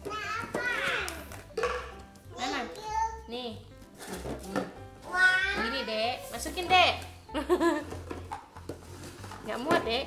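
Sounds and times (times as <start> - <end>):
soft background music with bass: 0.0 - 10.0.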